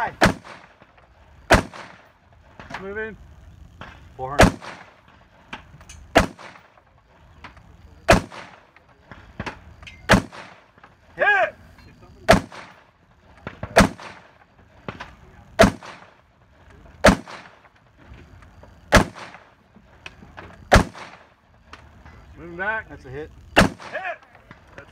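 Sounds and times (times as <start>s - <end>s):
rifle shots: 0.0s - 3.0s, 3.7s - 10.9s, 12.3s - 16.3s, 16.9s - 17.8s, 18.8s - 19.6s, 20.7s - 21.5s, 23.5s - 24.8s.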